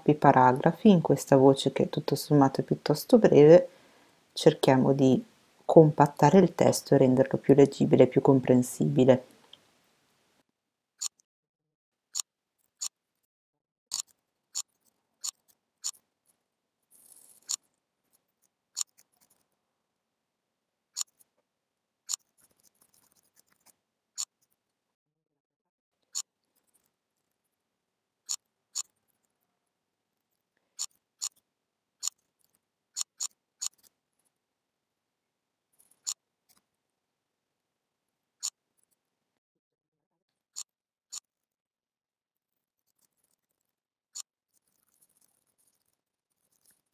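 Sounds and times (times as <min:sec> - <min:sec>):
soft rustle: 0:16.2 - 0:19.6, 0:44.5 - 0:46.9.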